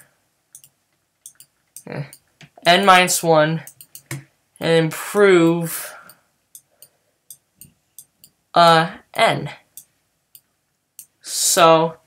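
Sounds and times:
person saying eh: 1.8 - 2.8.

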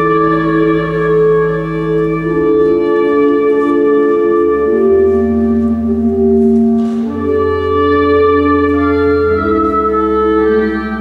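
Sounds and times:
church organ chords: 0.0 - 11.0.

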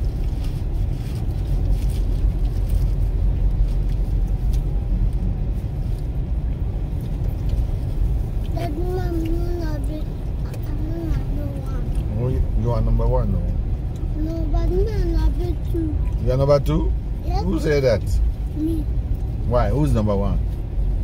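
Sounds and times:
car rumbling on dirt road: 0.0 - 21.0.

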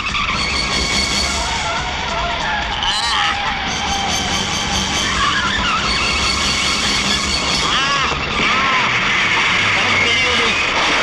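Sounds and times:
background music: 0.0 - 11.0
car engine: 0.0 - 11.0
road noise: 0.0 - 11.0.

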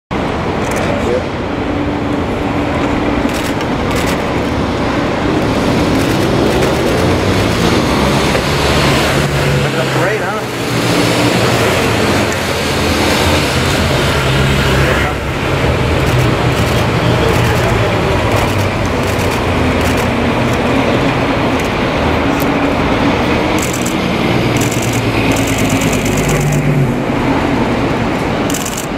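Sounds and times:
street and traffic noise: 0.1 - 28.9.

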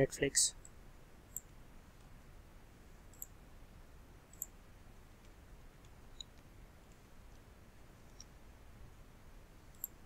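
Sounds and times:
faint steady hiss: 0.0 - 10.0
computer mouse clicks: 0.6 - 2.1, 3.1 - 3.4, 4.3 - 4.6, 9.7 - 10.0.

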